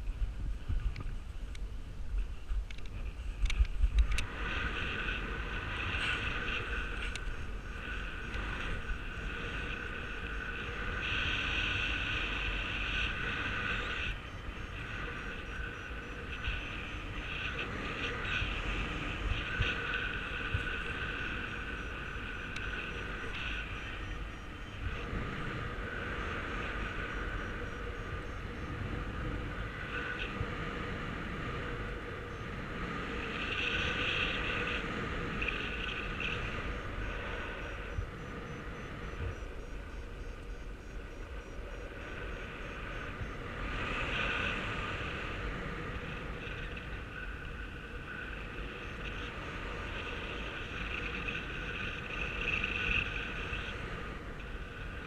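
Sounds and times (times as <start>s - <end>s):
wind rushing over microphone: 0.0s - 55.0s
faint high rapid beeping: 35.4s - 43.5s.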